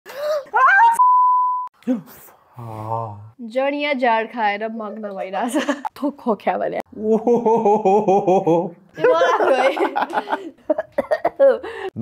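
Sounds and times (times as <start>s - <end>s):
woman speaking excitedly: 0.6s - 1.0s
censor bleep: 1.0s - 1.7s.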